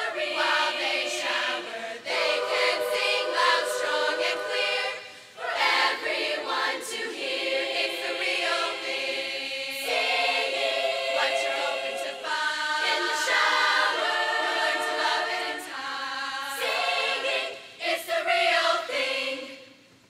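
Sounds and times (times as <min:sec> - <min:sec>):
women's choir singing in harmony: 0:00.0 - 0:19.8.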